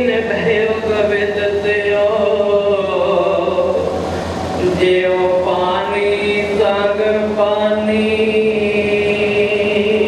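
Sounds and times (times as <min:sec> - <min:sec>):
man chanting a prayer: 0:00.0 - 0:03.8.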